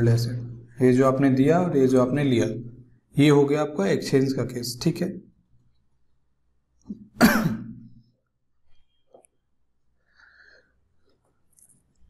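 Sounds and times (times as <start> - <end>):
man clearing his throat: 6.9 - 8.0.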